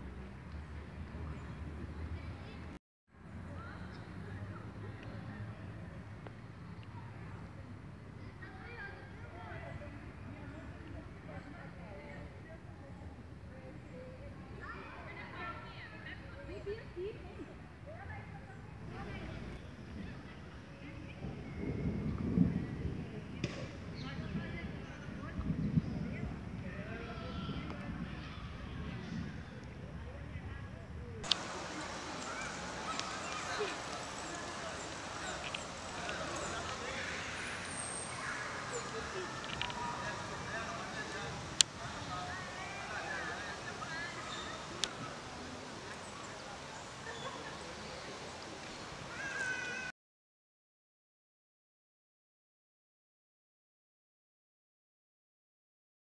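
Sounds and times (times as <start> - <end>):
steady background hiss: 31.2 - 49.9.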